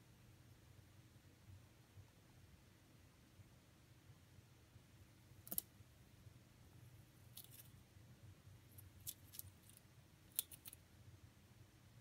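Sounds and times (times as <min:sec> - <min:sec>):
rabbit gnawing pinecone: 0:07.1 - 0:07.8, 0:08.6 - 0:10.8.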